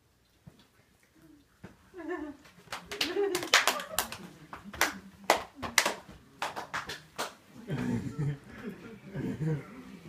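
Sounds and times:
hands smacking: 2.4s - 7.9s.

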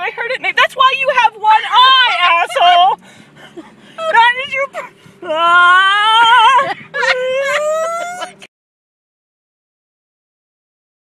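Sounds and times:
person whimpering and wailing: 4.0s - 8.5s.

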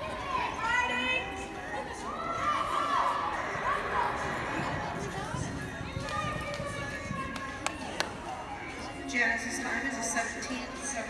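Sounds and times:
raised drawn-out human voices: 0.0s - 9.1s.

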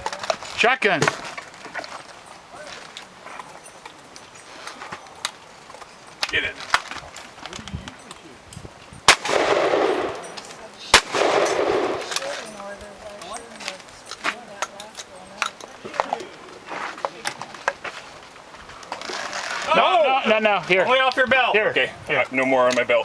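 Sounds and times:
shotgun shots with echo: 9.1s - 10.3s, 10.9s - 12.3s.

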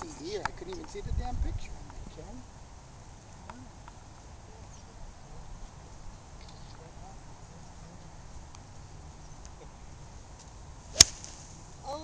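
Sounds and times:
golf club striking ball: 10.9s - 11.6s.

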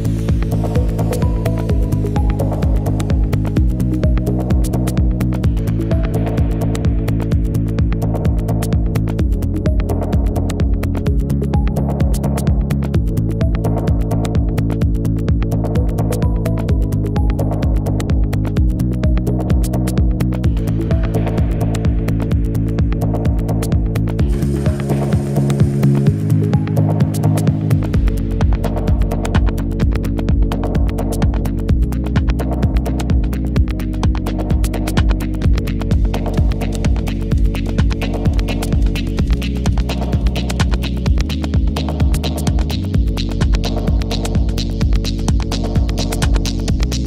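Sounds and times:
minimal techno music: 0.0s - 47.0s.

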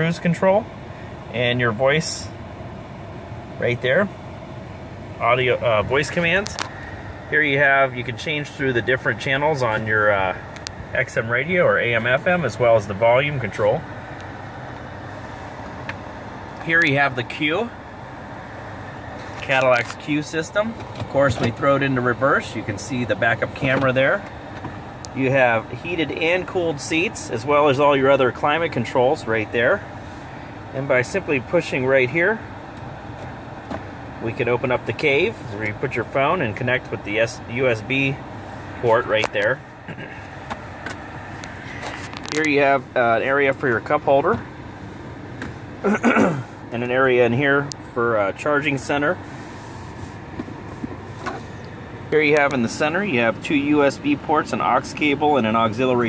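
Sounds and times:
car climate fan hiss: 0.0s - 56.0s
car engine idling: 0.0s - 56.0s.

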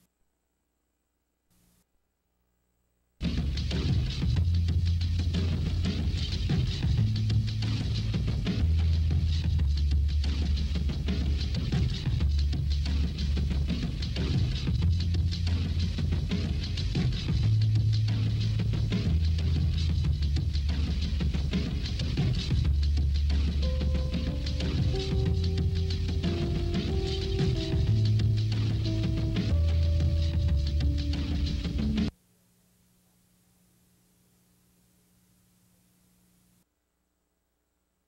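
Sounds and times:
bass line: 3.2s - 32.1s.

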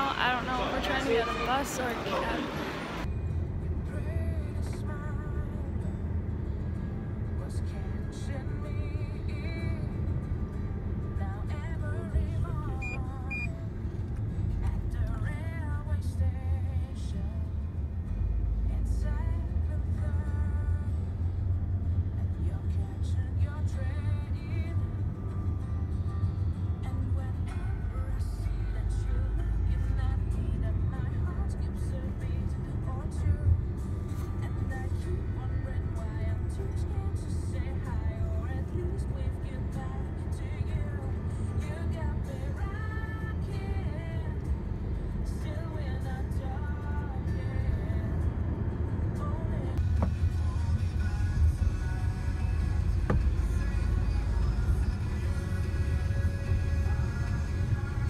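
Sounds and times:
music playing: 0.0s - 58.0s
vehicle rumble inside cabin: 0.0s - 58.0s.

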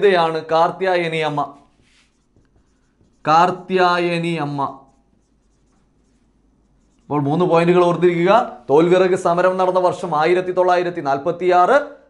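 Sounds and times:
man speaking: 0.0s - 1.6s, 3.2s - 4.9s, 7.1s - 12.0s
marker pen writing on whiteboard: 0.0s - 10.1s.

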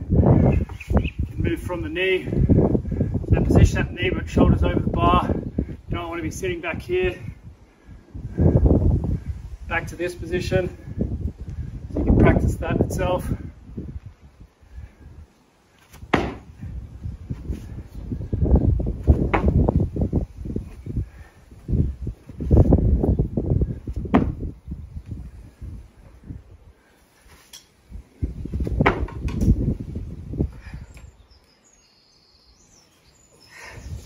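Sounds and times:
wind buffeting microphone: 0.0s - 15.4s, 16.0s - 26.9s, 27.8s - 31.4s, 33.5s - 34.0s.

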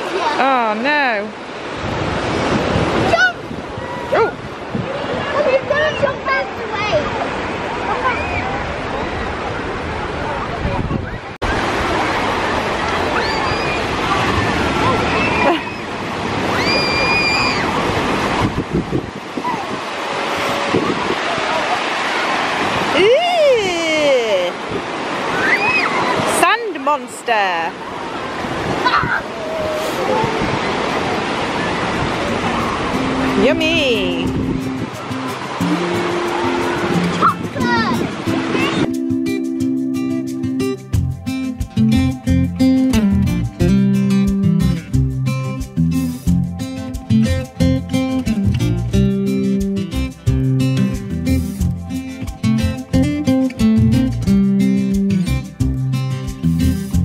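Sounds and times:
waves washing on beach: 0.0s - 41.9s, 49.2s - 53.7s
distant children shouting: 3.0s - 9.6s, 11.2s - 17.9s, 19.4s - 22.5s, 25.2s - 26.3s, 27.9s - 33.0s, 36.3s - 38.9s
strummed acoustic guitar music: 32.4s - 57.0s.

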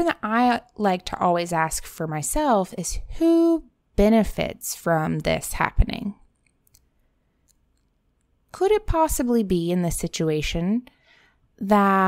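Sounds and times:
woman speaking: 0.0s - 6.3s, 8.5s - 10.9s, 11.6s - 12.0s.

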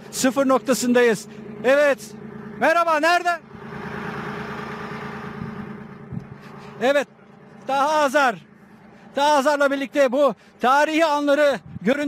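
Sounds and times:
armoured vehicle engine running: 0.0s - 12.0s.

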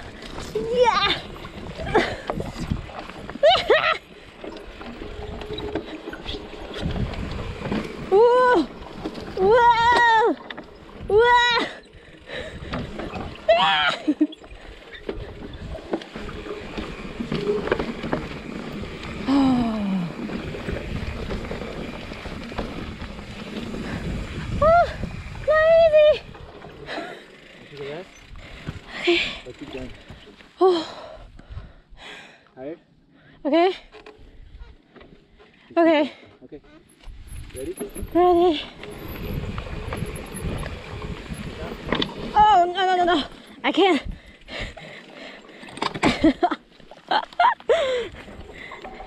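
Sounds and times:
bike tyres rumbling on dirt: 0.0s - 30.2s, 37.1s - 45.4s
wind on microphone: 18.9s - 26.7s, 37.1s - 42.5s.

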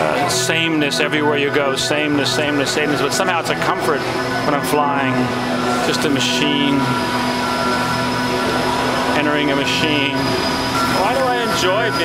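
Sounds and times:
steady drone with held tones: 0.0s - 12.0s.

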